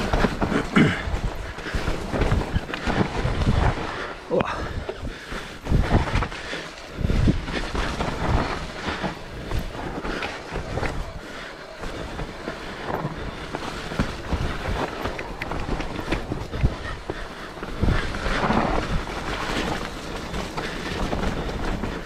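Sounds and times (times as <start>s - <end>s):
bike rattling and clattering: 0.0s - 22.0s
bike tyres rolling over dirt: 0.0s - 22.0s.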